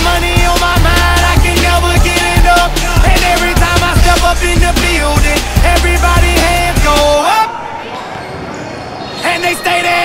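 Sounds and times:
hip-hop music: 0:00.0 - 0:07.8, 0:09.2 - 0:10.0
spectators' voices: 0:00.0 - 0:10.0.

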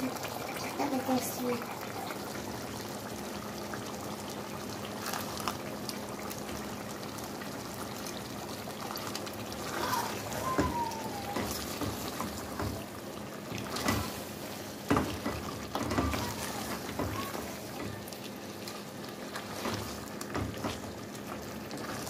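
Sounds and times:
stew bubbling in a pot: 0:00.0 - 0:22.0.

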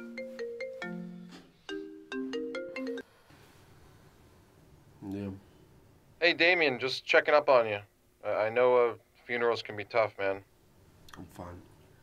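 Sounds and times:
smartphone melodic ringtone: 0:00.0 - 0:03.1.

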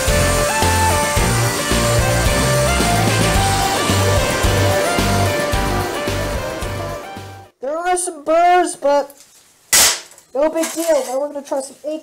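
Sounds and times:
man speaking: 0:07.6 - 0:09.2
sharp metal clank: 0:09.8 - 0:11.0.

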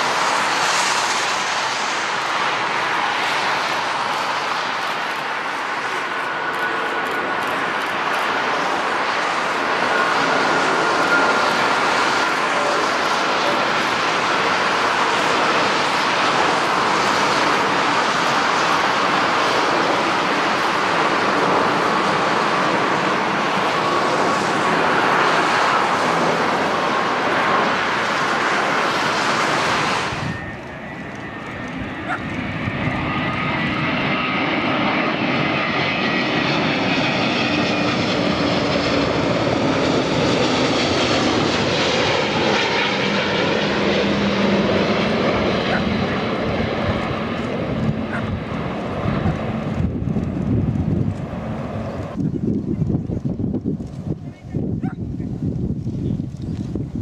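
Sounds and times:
jet airliner engines roaring: 0:00.0 - 0:57.0.

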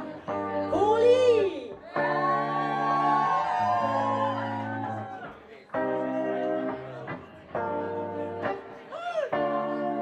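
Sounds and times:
indie electro-pop music: 0:00.0 - 0:10.0.

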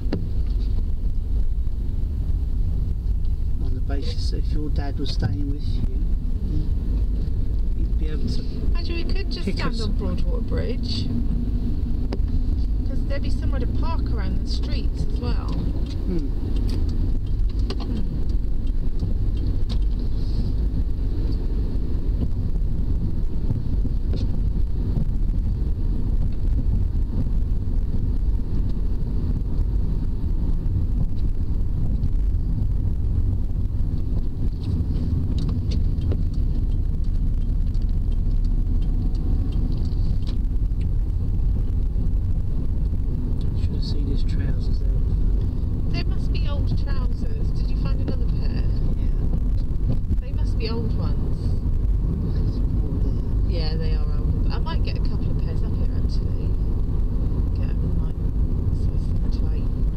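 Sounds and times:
car engine and tyre road noise: 0:00.0 - 0:59.9.

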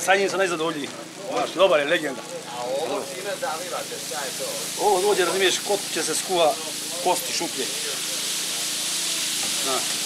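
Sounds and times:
oil sizzling on griddle: 0:00.0 - 0:10.0
people talking nearby: 0:00.0 - 0:10.0.

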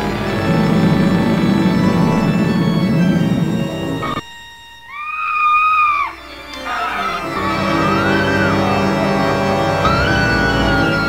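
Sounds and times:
organ music: 0:00.0 - 0:11.0
woman screaming: 0:04.9 - 0:08.9.

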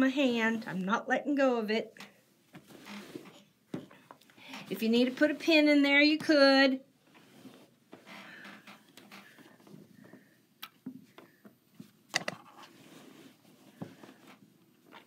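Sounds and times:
fabric rustling: 0:02.5 - 0:03.5.

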